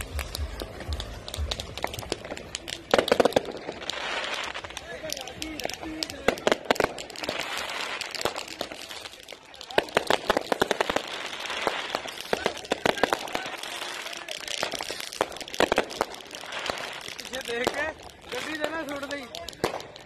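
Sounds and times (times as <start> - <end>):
fireworks bangs and crackles: 0.0 - 20.0.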